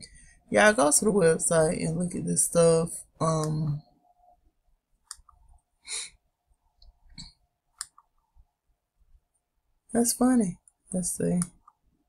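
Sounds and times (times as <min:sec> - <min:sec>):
faint steady hum: 0:00.0 - 0:12.0
computer mouse clicks: 0:05.0 - 0:05.6, 0:06.8 - 0:08.2.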